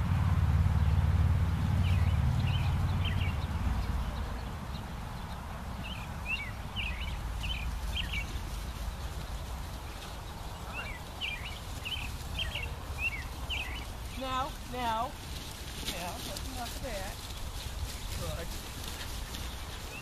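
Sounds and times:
low steady rumble: 0.0s - 15.3s
songbird chirping: 0.5s - 20.0s.

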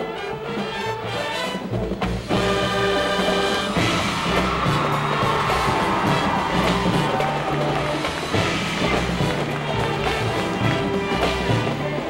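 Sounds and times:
marching band playing swing: 0.0s - 12.0s
crowd cheering: 2.3s - 12.0s.

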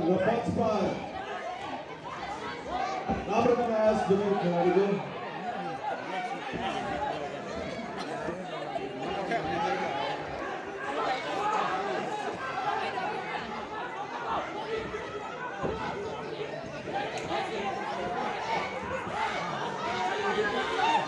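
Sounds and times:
crowd chattering: 0.0s - 21.0s.

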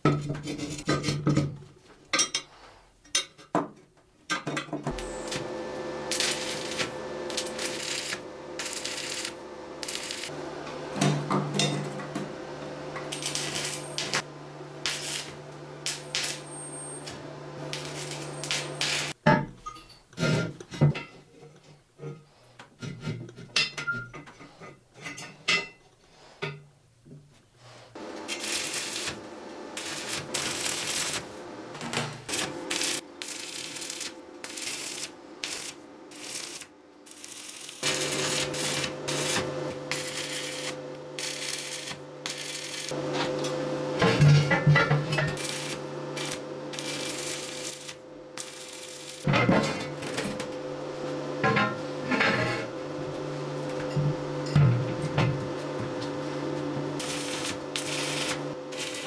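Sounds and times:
arc welding crackle: 4.9s - 10.4s, 12.6s - 19.2s, 28.1s - 43.8s, 45.2s - 51.1s, 55.6s - 59.0s.

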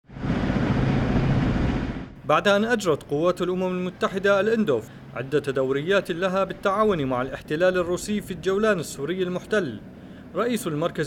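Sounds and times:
vehicle engine running: 0.1s - 2.2s
rushing background noise: 0.1s - 11.0s.

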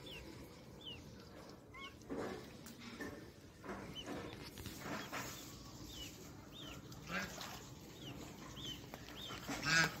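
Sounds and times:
ducks chirping: 0.0s - 2.1s, 3.8s - 10.0s.

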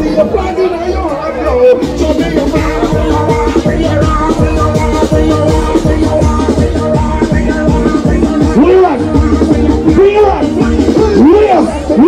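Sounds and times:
crowd chattering: 0.0s - 12.0s
loud music with heavy bass: 0.0s - 12.0s.

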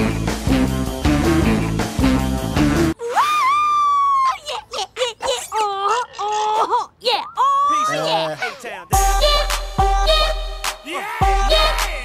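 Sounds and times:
high female cartoon voice moaning: 3.0s - 8.6s.

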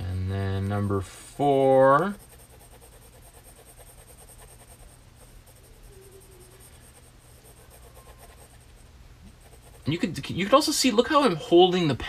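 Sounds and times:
pencil shading on paper: 0.7s - 10.0s.

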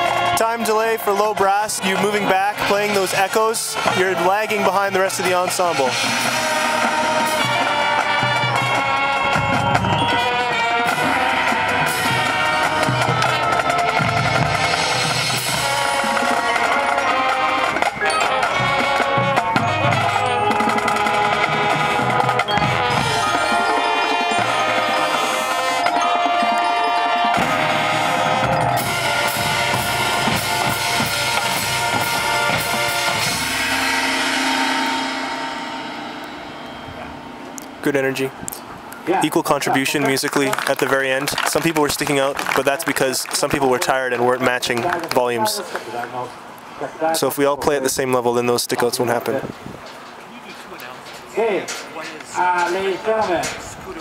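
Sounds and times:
marching band playing: 0.0s - 54.0s.

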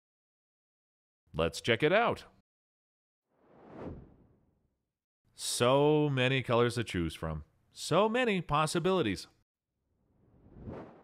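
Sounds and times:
whoosh transition effect: 3.4s - 4.5s, 10.2s - 11.0s.

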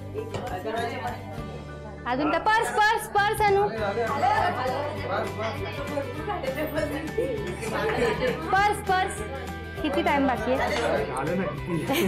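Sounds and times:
background music: 0.0s - 12.0s
group of people chattering: 0.0s - 12.0s.

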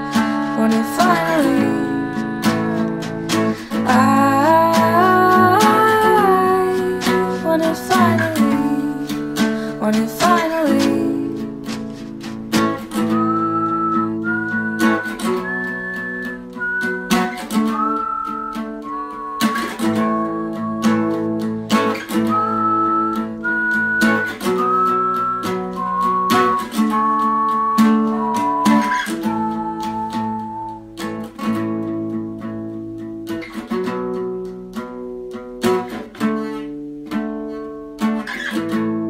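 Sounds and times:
whistled melody: 0.0s - 34.5s
strummed acoustic guitar: 0.0s - 39.0s.

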